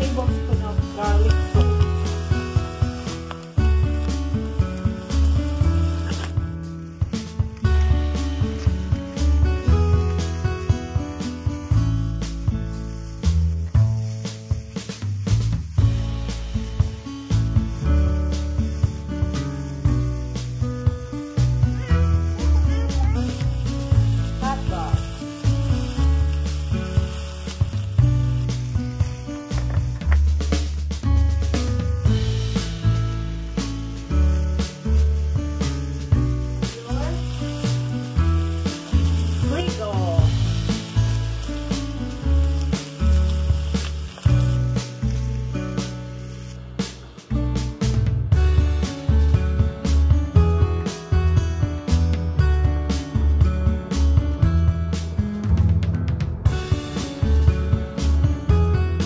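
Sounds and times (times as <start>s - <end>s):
meat sizzling in a frying pan: 0.0s - 55.2s, 56.4s - 59.0s
background music with bass and beat: 0.0s - 59.0s.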